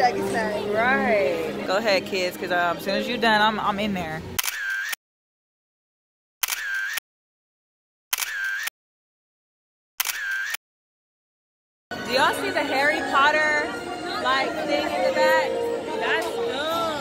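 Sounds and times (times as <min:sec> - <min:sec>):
camera shutter click: 0:04.4 - 0:05.0, 0:06.4 - 0:07.0, 0:08.1 - 0:08.7, 0:10.0 - 0:10.6.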